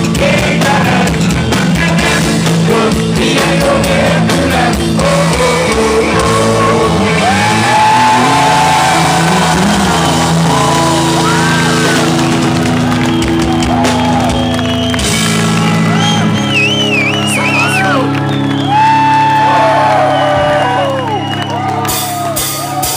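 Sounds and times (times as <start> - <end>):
rock band playing live: 0.0 - 22.9
crowd shouting and whooping: 5.2 - 22.9.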